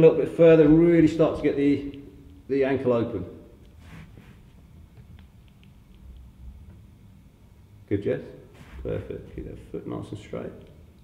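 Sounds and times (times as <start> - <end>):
low steady hum: 0.0 - 11.0
faint small ticks: 5.0 - 6.8.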